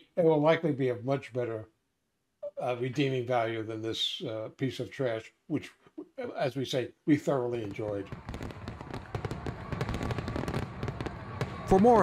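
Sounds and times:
fireworks popping and crackling: 7.6s - 12.0s.

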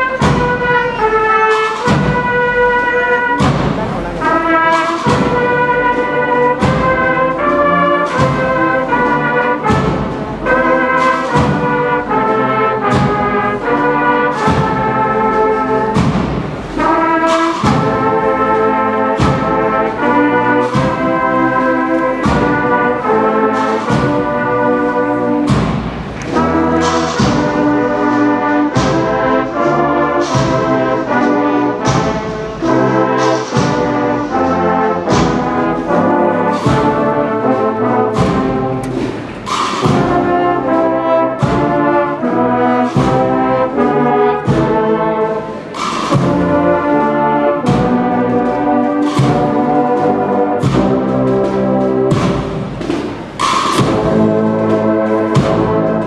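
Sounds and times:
brass band playing a slow march: 0.0s - 56.0s
percussion strokes: 0.0s - 56.0s.

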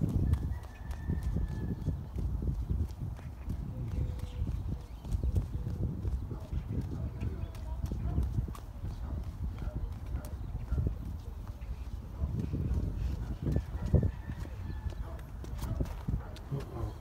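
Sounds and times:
footsteps on concrete: 0.0s - 17.0s.

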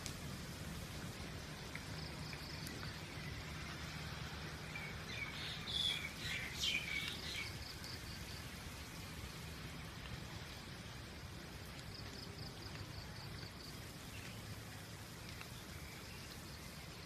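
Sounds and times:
light steady rain: 0.0s - 17.0s
bird chirping: 4.7s - 8.0s.

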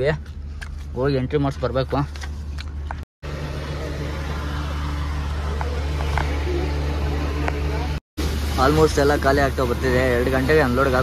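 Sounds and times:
truck engine droning: 2.6s - 11.0s.

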